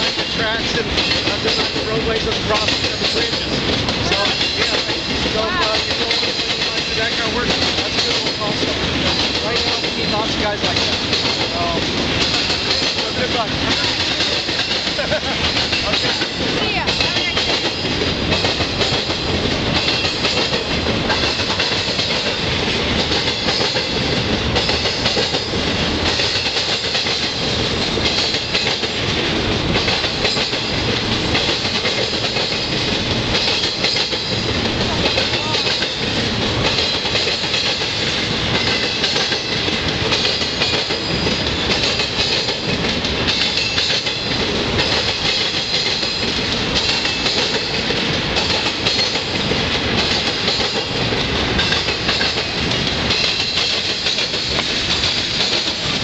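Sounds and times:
train wheels banging over crossing: 0.0s - 56.0s.

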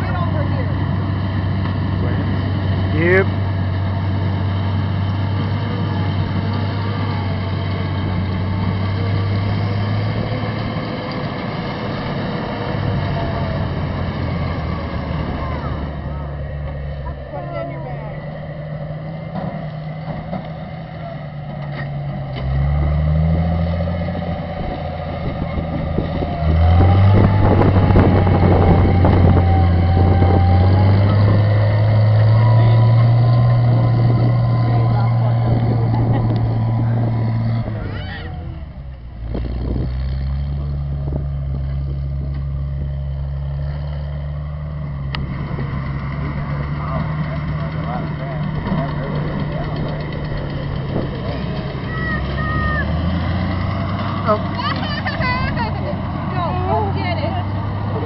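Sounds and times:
tractor engine running: 0.0s - 58.0s.

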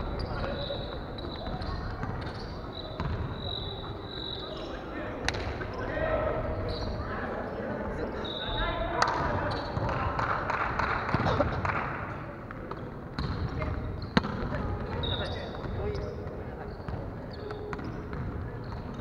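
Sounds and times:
indistinct echoing voices: 0.0s - 13.9s
volleyballs hit and bouncing: 0.1s - 4.0s, 5.2s - 5.8s, 9.0s - 19.0s.

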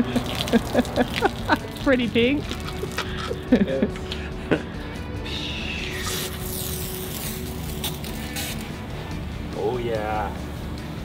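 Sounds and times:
background music: 0.0s - 11.0s
pressure washer spraying concrete: 5.9s - 8.7s.

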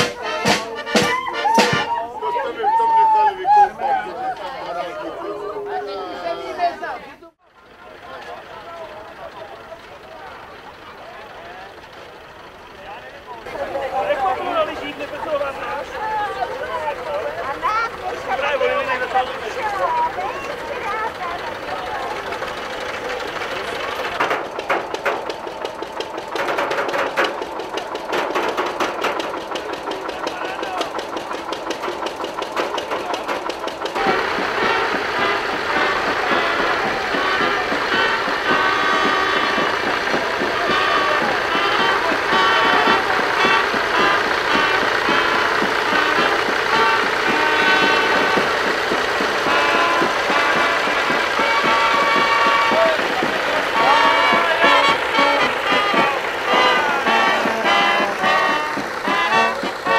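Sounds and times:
marching brass band playing: 0.0s - 2.0s, 32.7s - 59.9s
tractor engine knocking: 0.0s - 5.8s, 6.5s - 59.9s
voices: 0.0s - 59.9s.

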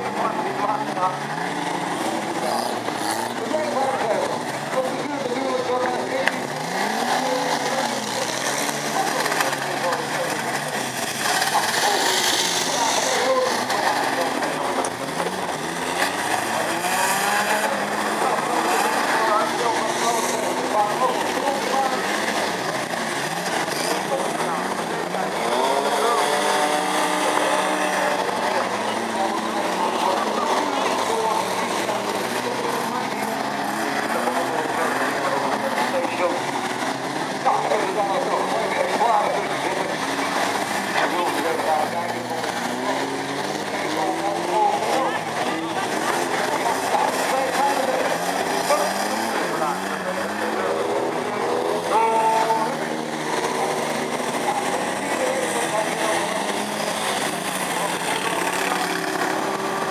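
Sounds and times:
crowd chatter: 0.0s - 59.9s
race car engines revving: 0.0s - 59.9s.

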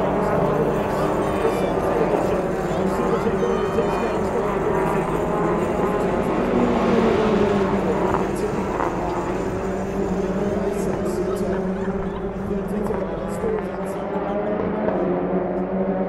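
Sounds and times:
indistinct voices: 0.0s - 15.8s
race car engines passing: 0.0s - 16.0s.

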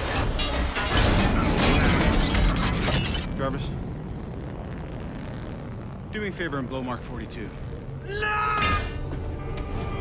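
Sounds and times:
clanks and crashes: 0.0s - 3.3s
deep rumble: 1.5s - 8.3s.

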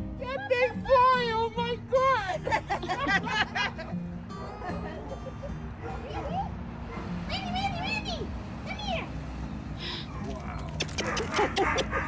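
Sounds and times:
woman calling a dog: 5.9s - 6.5s.

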